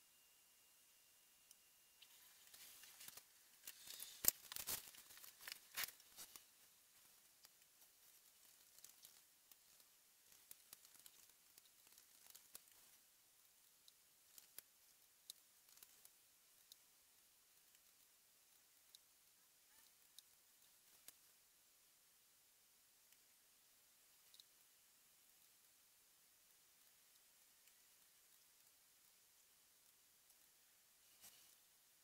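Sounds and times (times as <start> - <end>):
faint crackles and clicks: 0.1 - 32.0
faint ticks: 1.4 - 32.0.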